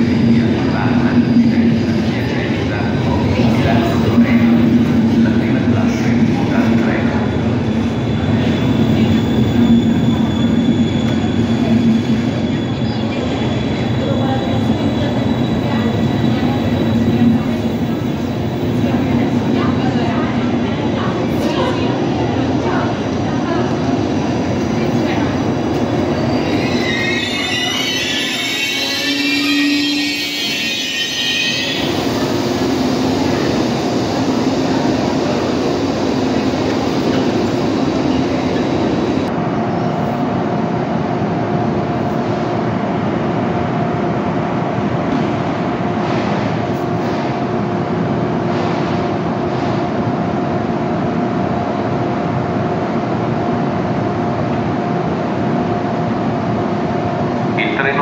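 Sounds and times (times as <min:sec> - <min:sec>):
train coaches rolling past: 0:00.0 - 0:52.6
wheels and brakes squealing: 0:07.2 - 0:14.2, 0:26.0 - 0:32.2.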